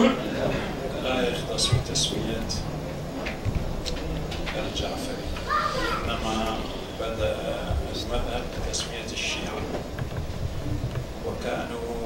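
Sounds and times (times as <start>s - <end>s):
indistinct talking: 0.0s - 12.0s.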